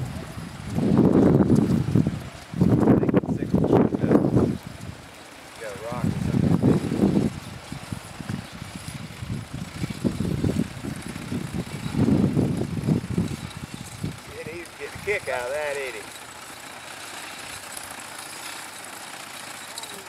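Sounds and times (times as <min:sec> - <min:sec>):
mower knife clattering: 0:14.6 - 0:20.0.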